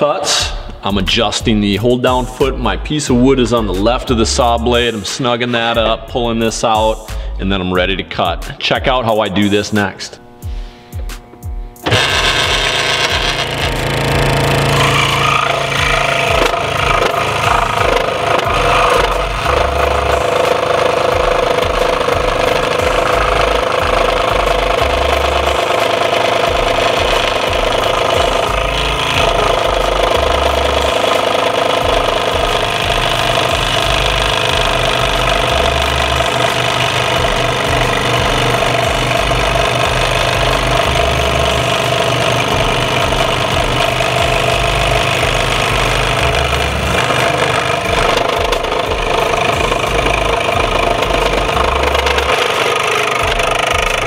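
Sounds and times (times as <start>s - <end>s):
scroll saw cutting wood: 11.8s - 54.0s.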